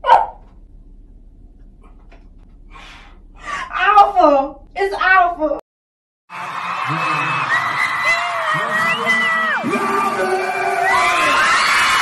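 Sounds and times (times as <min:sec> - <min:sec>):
dog barking: 0:00.0 - 0:00.4.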